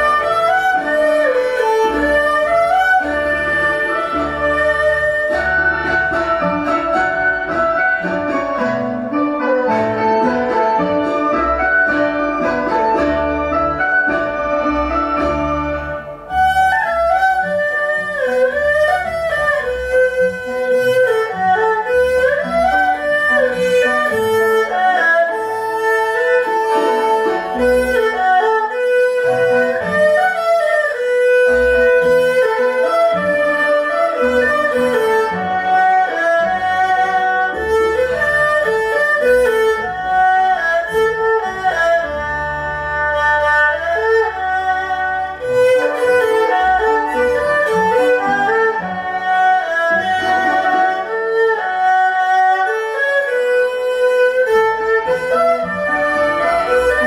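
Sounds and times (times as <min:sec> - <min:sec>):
erhu playing lively melody: 0:00.0 - 0:57.0
low accompaniment: 0:00.0 - 0:57.0.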